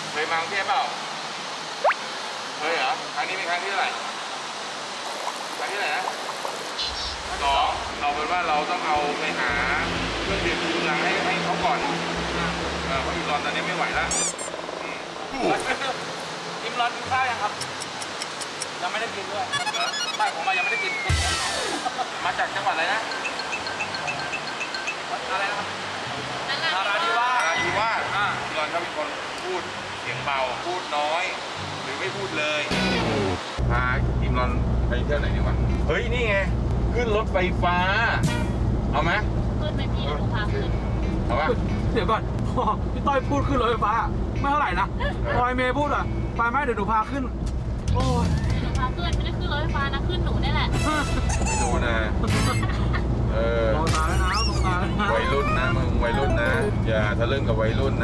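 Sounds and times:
high wavering cry: 19.5 - 21.8, 54.1 - 56.8
light repeating chime: 23.0 - 25.2.

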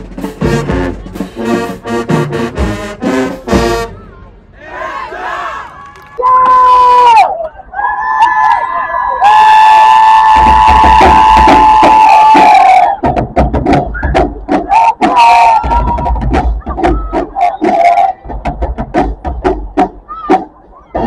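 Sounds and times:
marching band playing: 0.0 - 6.1, 10.4 - 21.0.

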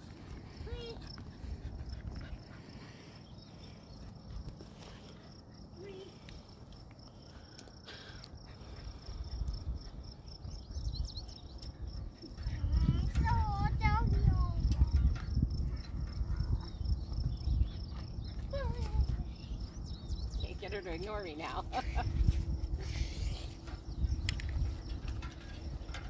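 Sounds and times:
low rumble: 8.6 - 26.0.

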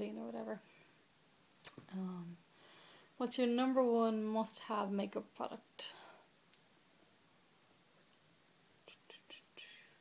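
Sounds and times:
woman whispering: 8.9 - 10.0.

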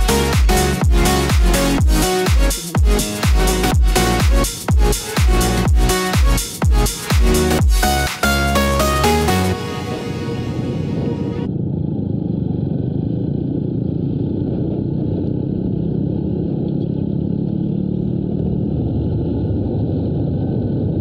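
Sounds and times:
motorcycle engine running: 0.0 - 7.9
music track: 0.0 - 11.5
road and wind noise: 0.0 - 21.0.

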